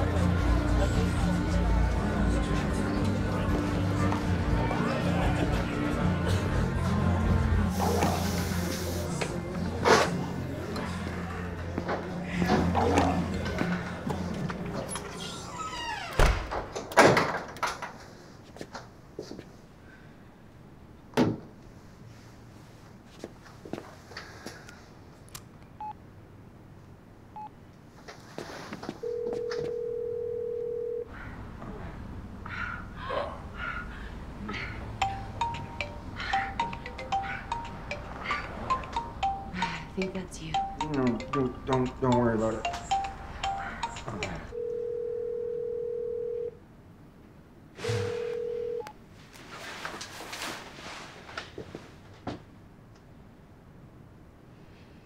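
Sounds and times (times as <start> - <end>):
phone beeps: 29.0 - 31.1, 35.0 - 46.5, 47.8 - 48.9
ringback tone: 35.0 - 41.6, 42.5 - 46.5.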